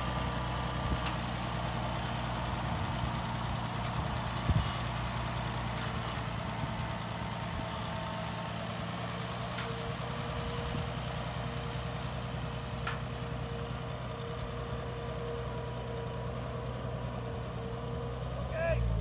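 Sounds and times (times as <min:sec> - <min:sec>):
tractor engine running: 0:00.0 - 0:19.0
faint sharp clicks: 0:12.8 - 0:13.1.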